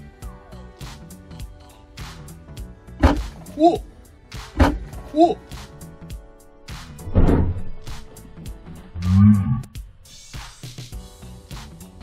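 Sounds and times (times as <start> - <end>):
background music: 0.0 - 12.0
deep drawn-out voice-like cry: 3.4 - 4.0, 5.0 - 5.5, 9.0 - 9.8.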